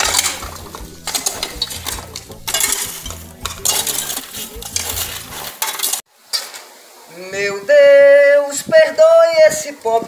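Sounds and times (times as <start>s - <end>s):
hoe chopping and scraping soil: 0.0s - 6.1s.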